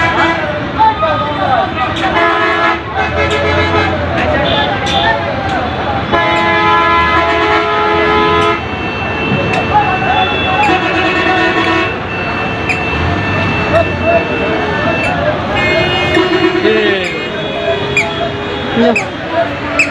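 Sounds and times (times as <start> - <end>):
vehicle horns honking: 0.0 - 0.6, 1.5 - 5.2, 6.0 - 19.9
traffic din: 0.0 - 19.9
voices: 0.0 - 19.9.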